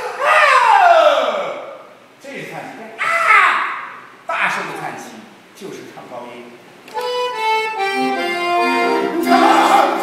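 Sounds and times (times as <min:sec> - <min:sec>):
man's voice gliding in pitch: 0:09.0 - 0:10.0.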